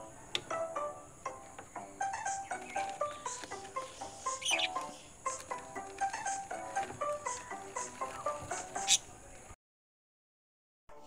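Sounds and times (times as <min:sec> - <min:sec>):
plucked notes background music: 0:00.0 - 0:09.0
high chirp: 0:02.0 - 0:05.4.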